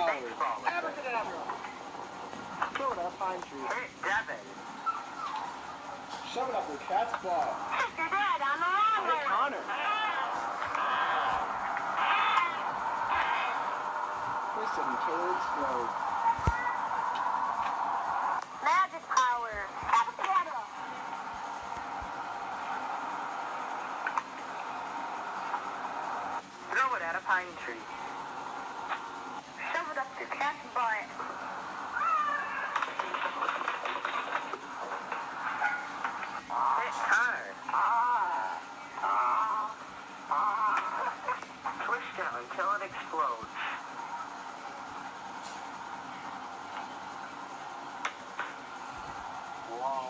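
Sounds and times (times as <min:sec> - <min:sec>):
children squealing and shouting: 0:09.7 - 0:13.7, 0:31.9 - 0:32.8.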